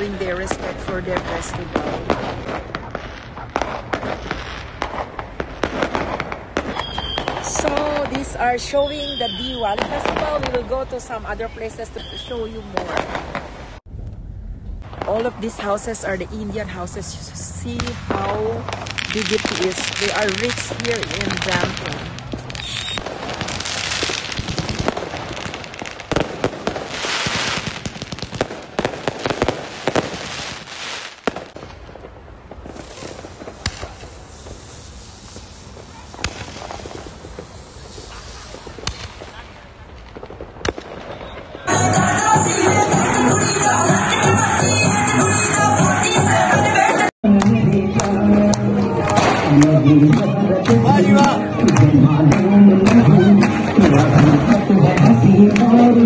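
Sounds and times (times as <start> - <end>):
firecrackers banging: 0.0 - 56.0
low rumble: 13.0 - 19.1.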